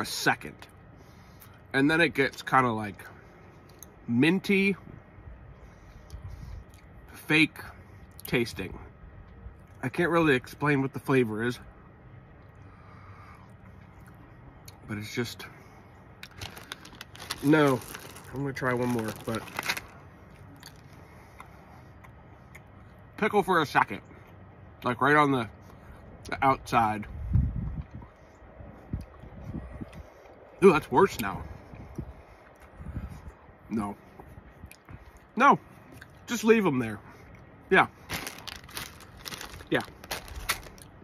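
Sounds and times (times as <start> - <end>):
faint background hum: 0.0 - 41.0
plastic bag crinkling: 16.2 - 20.0, 38.0 - 40.9.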